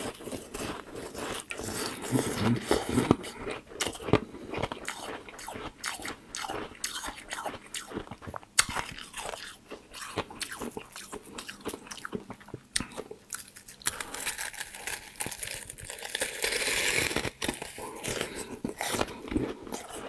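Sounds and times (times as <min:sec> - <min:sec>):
ice crunching while chewed: 0:00.0 - 0:20.0.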